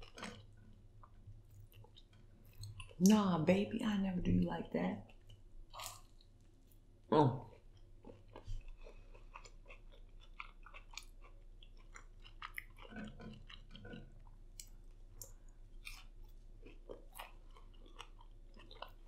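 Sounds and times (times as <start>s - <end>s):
crunchy chewing: 7.5s - 19.0s.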